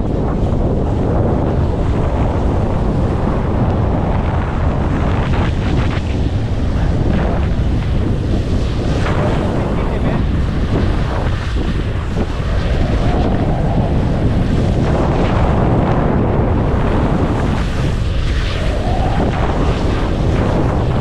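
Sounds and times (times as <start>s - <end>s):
wind buffeting microphone: 0.0s - 21.0s
skis scraping over snow: 0.1s - 21.0s.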